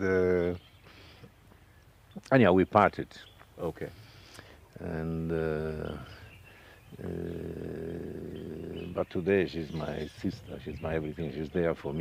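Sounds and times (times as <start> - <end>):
man saying uhh: 4.8 - 6.3, 6.9 - 9.0.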